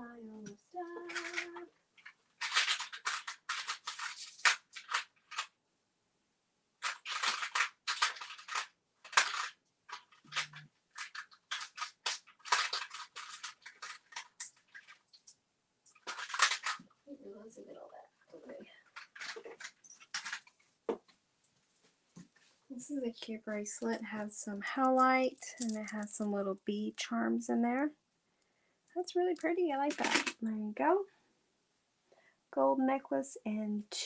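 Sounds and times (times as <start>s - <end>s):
packaging crinkling and rattling: 0.8s - 5.5s, 6.8s - 16.9s, 18.8s - 20.7s, 23.2s - 26.4s, 29.0s - 30.4s.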